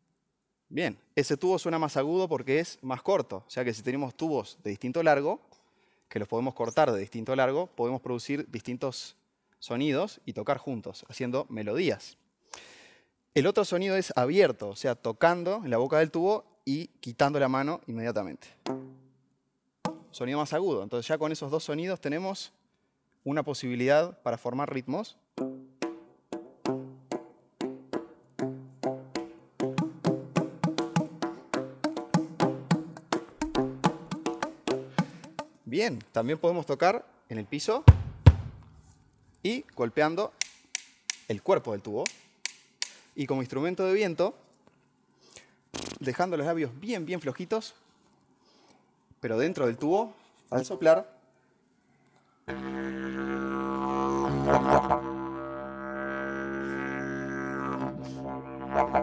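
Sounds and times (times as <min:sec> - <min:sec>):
tube drums slapped by palm: 0:19.9 - 0:20.1, 0:25.4 - 0:35.6, 0:37.9 - 0:38.8
low pipe drone: 0:52.5 - 0:59.0.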